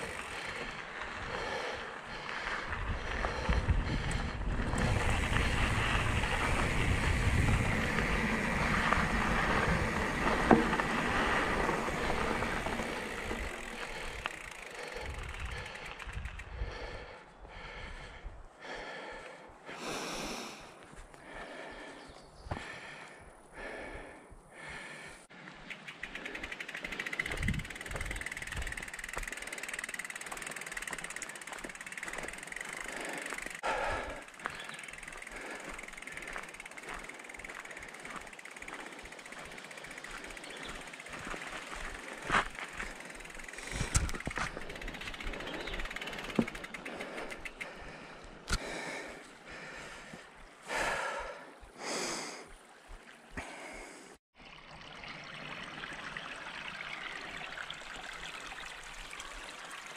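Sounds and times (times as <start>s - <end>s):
wind buffeting microphone: 0.0s - 14.4s, 15.0s - 18.5s, 27.2s - 29.2s
bicycle hub ticking: 0.0s - 18.2s, 25.3s - 51.1s
bike tyre and drivetrain noise: 0.0s - 54.0s.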